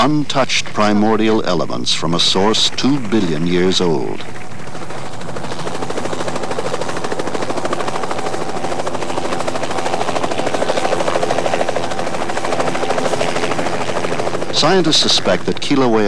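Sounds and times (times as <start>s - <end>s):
helicopter rotor chopping: 0.0s - 16.0s.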